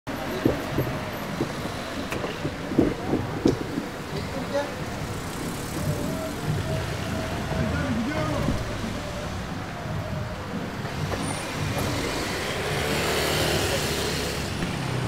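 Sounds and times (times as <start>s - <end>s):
faint indistinct voices: 0.1s - 11.8s
car engines running: 0.1s - 15.0s
sharp knocks: 0.4s - 4.0s.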